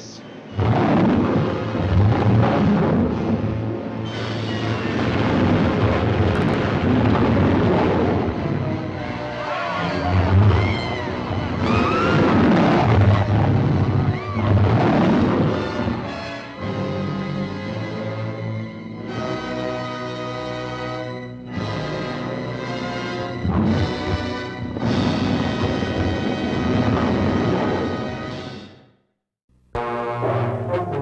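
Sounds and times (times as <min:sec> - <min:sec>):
rumbling crashes and booms: 0:00.6 - 0:04.0, 0:04.6 - 0:09.4, 0:10.2 - 0:16.2, 0:23.4 - 0:28.2
dramatic music: 0:15.1 - 0:28.7, 0:29.8 - 0:31.0.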